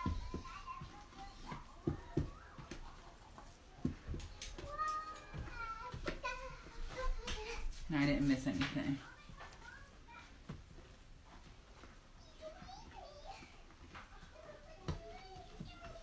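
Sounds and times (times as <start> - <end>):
faint child's voice: 0.0 - 7.8, 12.2 - 16.0.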